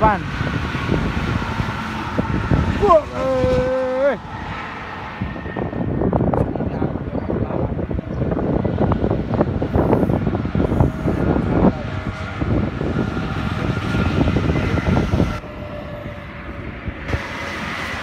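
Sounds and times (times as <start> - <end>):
engine and tyre rumble: 0.0 - 18.0.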